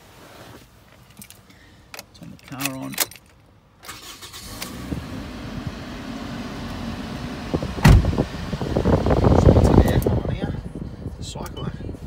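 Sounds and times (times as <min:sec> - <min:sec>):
faint handling rustle: 0:00.0 - 0:03.4.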